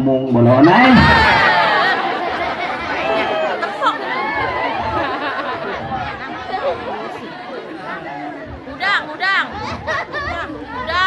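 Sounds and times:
audience chatter: 0:00.3 - 0:11.0.

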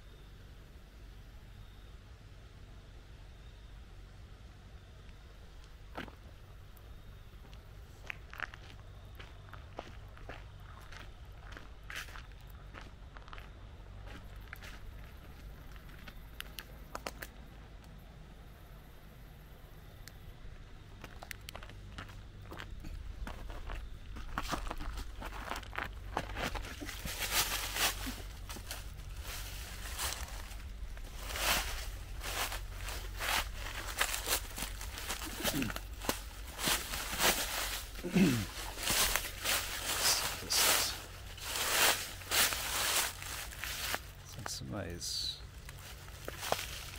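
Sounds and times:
footsteps crunching dry leaves: 0:08.0 - 0:16.0, 0:21.0 - 0:46.9.

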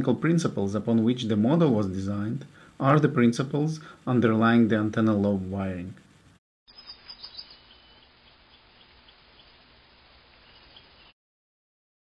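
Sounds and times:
faint hiss: 0:00.0 - 0:11.1.

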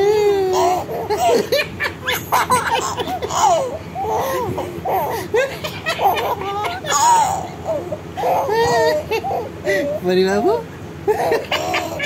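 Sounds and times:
baby giggling: 0:00.0 - 0:10.1, 0:11.1 - 0:12.0.

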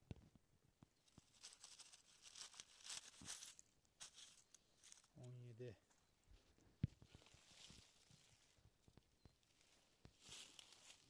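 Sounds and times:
dry leaves crackling and rustling: 0:01.1 - 0:05.1, 0:10.2 - 0:11.0.

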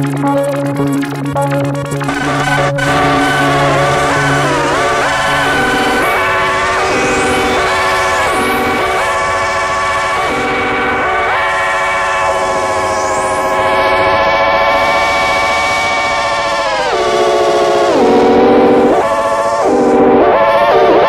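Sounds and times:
wavering synthesizer tone: 0:00.0 - 0:21.0.

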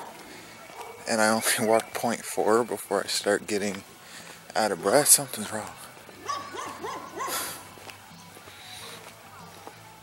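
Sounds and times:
dog barking: 0:00.0 - 0:01.1, 0:06.2 - 0:07.6.

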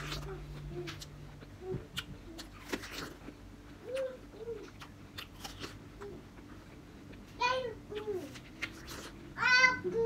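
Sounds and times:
apple crunching: 0:00.0 - 0:09.8.

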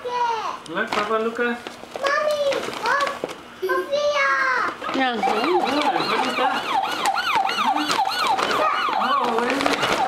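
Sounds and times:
electronic toy siren wailing: 0:04.8 - 0:10.0.

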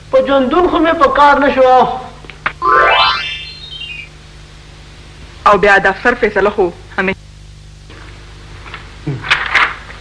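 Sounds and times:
comic sound effect sting: 0:02.6 - 0:04.1.

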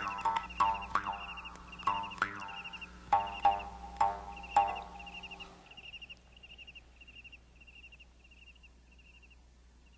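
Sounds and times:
cricket chirping: 0:00.0 - 0:09.9
low steady hum: 0:00.0 - 0:09.9.

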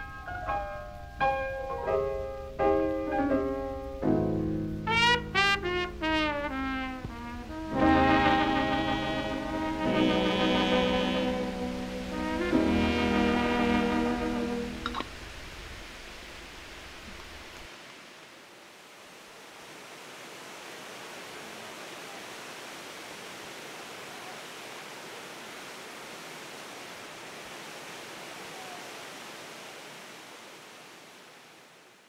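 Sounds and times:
steady hiss: 0:00.0 - 0:32.0.

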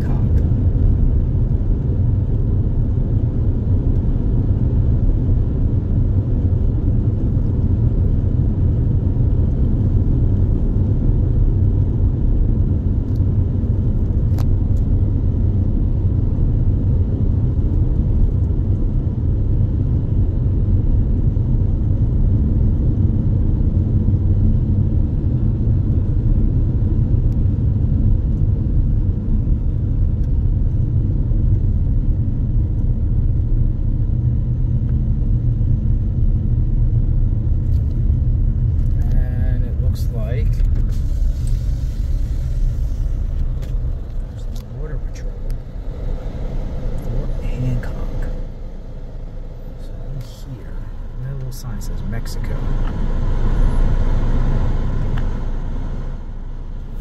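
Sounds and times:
car tyres and engine rumble: 0:00.0 - 0:57.0.

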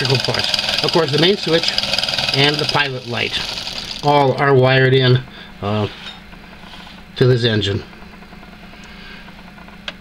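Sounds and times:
small engine mechanical buzz: 0:00.0 - 0:04.4.

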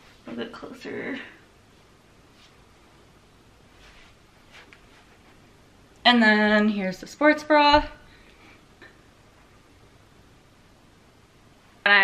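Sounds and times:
faint steady hiss: 0:00.0 - 0:12.0
woman speaking: 0:00.3 - 0:01.4, 0:06.0 - 0:08.0.

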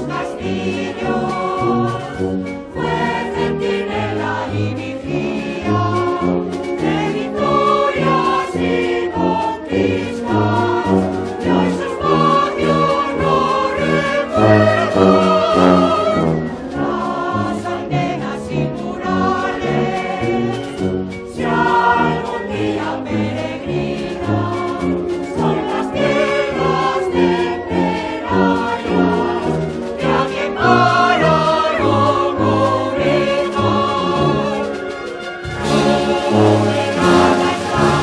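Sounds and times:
choir singing a hymn: 0:00.0 - 0:38.0
wind band accompanying: 0:00.0 - 0:38.0.

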